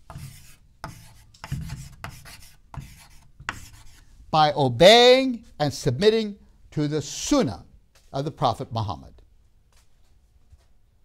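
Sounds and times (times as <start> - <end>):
chalk scratching on chalkboard: 0.0 - 4.1.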